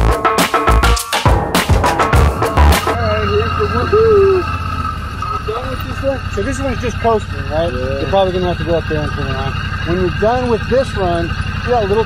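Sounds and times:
motorcycle engine idling: 0:01.3 - 0:12.0.

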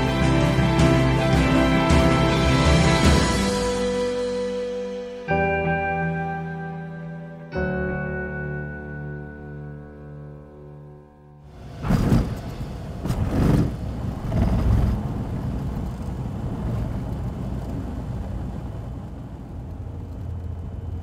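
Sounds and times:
soft music: 0:00.0 - 0:11.7
engine rumble: 0:11.5 - 0:21.0
loud rushes of noise: 0:11.5 - 0:21.0.

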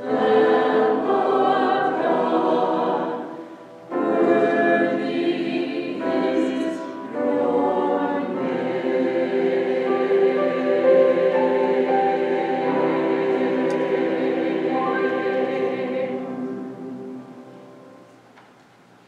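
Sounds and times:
mixed choir singing: 0:00.0 - 0:17.8.

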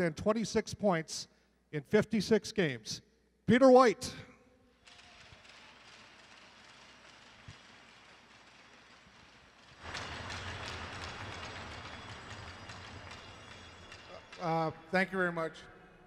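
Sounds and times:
crowd applauding: 0:04.8 - 0:14.9.

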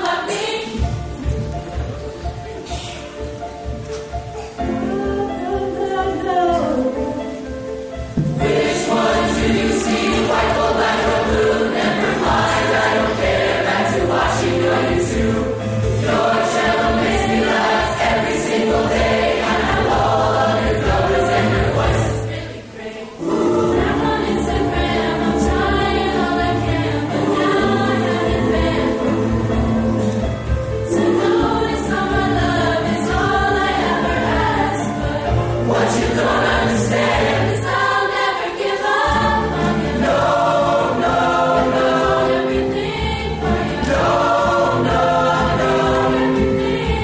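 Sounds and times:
choir singing: 0:00.0 - 0:03.3, 0:04.4 - 0:47.0.

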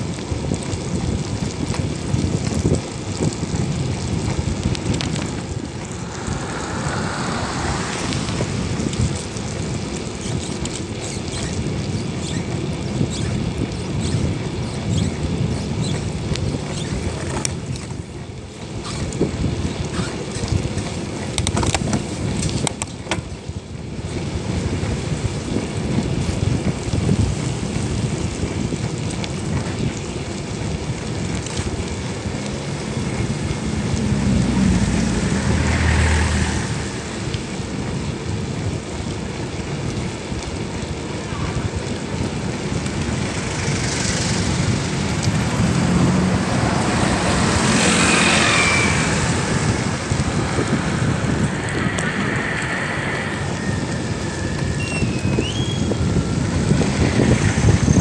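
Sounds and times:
road traffic: 0:00.0 - 0:58.0
vehicles passing: 0:00.0 - 0:58.0
wind buffeting microphone: 0:00.0 - 0:58.0.

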